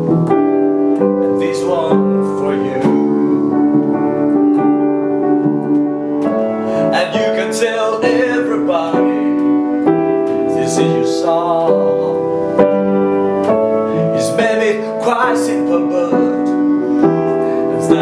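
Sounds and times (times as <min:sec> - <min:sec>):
piano chords: 0:00.0 - 0:18.0
man singing: 0:01.2 - 0:03.5, 0:06.8 - 0:12.7, 0:13.8 - 0:18.0.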